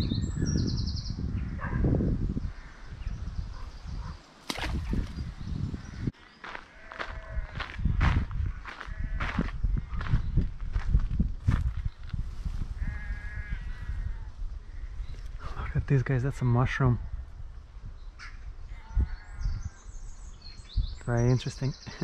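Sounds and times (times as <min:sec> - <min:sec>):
footsteps through grass: 0:06.2 - 0:13.4
distant animal calls: 0:12.8 - 0:14.9.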